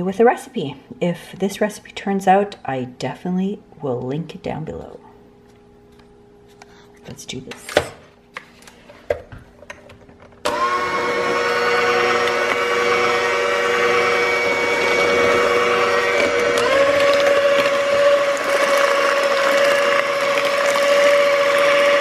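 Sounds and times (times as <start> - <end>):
electric hand mixer running: 10.4 - 22.0.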